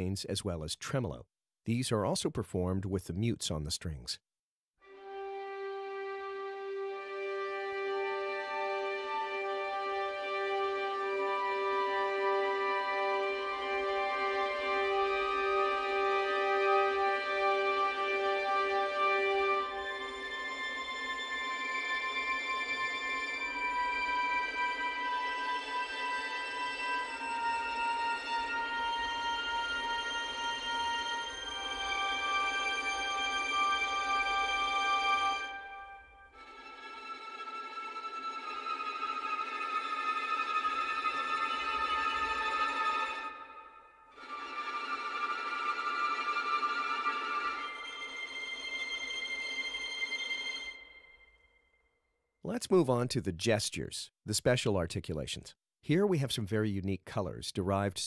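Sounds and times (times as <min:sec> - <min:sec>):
violins playing muted harmonics: 0:05.0 - 0:51.0
violin harmonic tremolo: 0:05.0 - 0:51.7.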